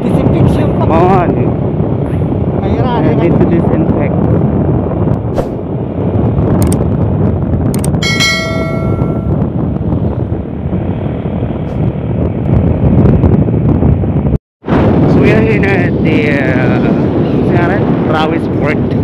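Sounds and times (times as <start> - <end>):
wind buffeting microphone: 0.0 - 19.0
click and bell-like ding: 8.0 - 9.3.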